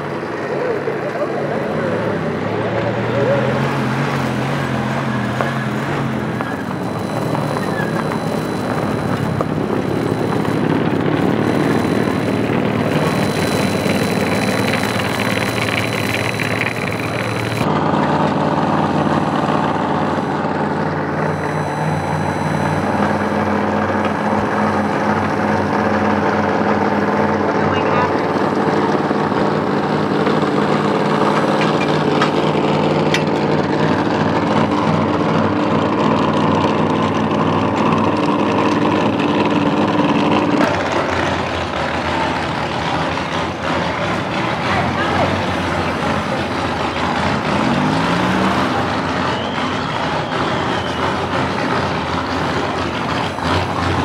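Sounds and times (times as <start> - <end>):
vehicle engines idling: 0.0 - 54.0.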